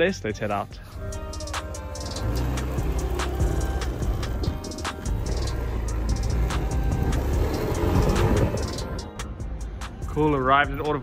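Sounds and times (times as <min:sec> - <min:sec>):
music with steady beat: 0:00.7 - 0:11.0
scooter engine rumble: 0:00.9 - 0:10.0.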